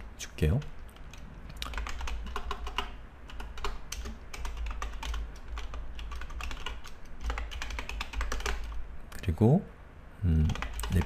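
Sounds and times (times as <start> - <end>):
typing on computer keyboard: 0.9 - 8.8, 10.5 - 11.0.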